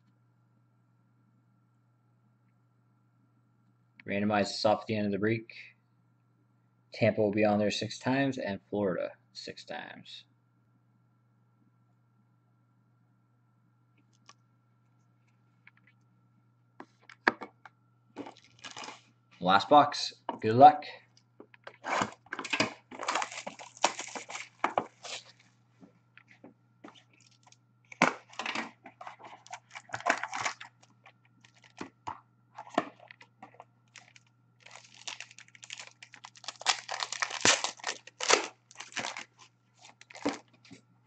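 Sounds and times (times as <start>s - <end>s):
wrapping tearing and crinkling: 18.2s - 19.1s, 21.6s - 25.5s, 26.2s - 32.0s, 32.6s - 40.5s
cardboard box being opened: 21.8s - 25.4s.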